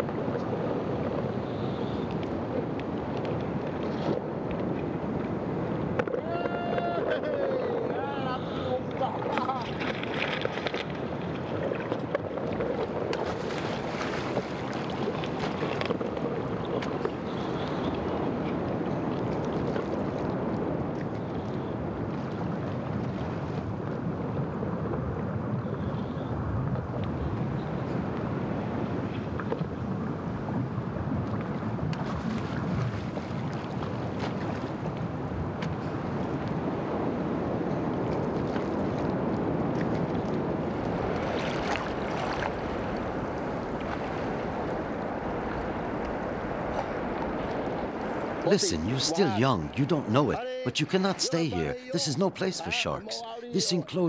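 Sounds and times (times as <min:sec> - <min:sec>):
wind rumbling on microphone: 0:00.0 - 0:50.5
sea surf washing: 0:00.0 - 0:54.0
wavering voice-like sound: 0:48.4 - 0:53.1.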